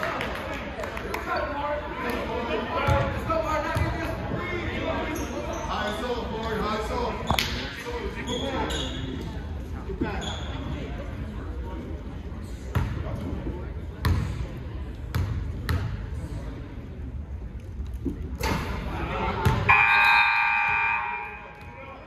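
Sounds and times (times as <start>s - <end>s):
voices echoing in gym: 0.0s - 22.0s
basketball bouncing on gym floor: 14.0s - 14.4s.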